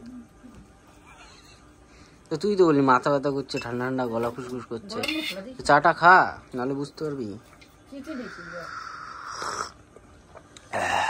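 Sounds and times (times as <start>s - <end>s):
breathy blowing on tea: 8.3s - 9.8s
loud slurping sip: 8.6s - 9.8s.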